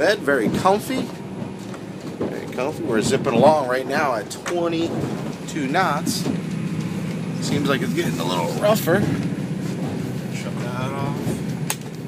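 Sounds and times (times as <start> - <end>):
boat diesel engines droning: 0.0 - 12.0.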